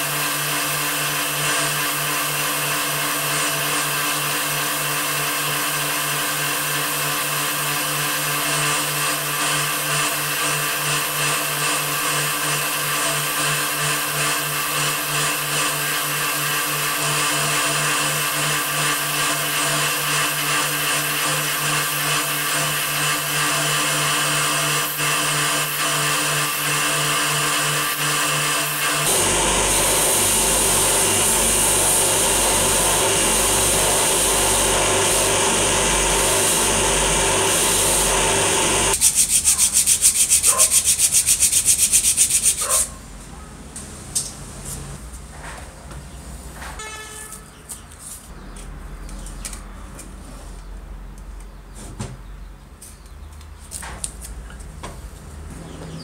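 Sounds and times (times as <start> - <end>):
wire wheel brush scrubbing metal: 8.9 - 42.8
motor hum: 19.4 - 39.0.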